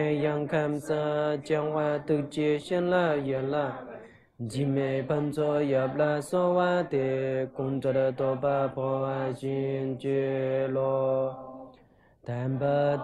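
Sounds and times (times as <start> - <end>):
man chanting a prayer: 0.0 - 11.4, 12.3 - 13.0.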